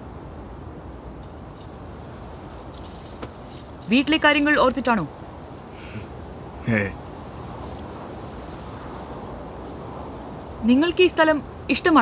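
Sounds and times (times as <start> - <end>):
steady background hiss: 0.0 - 12.0
faint light jingling: 0.8 - 5.1.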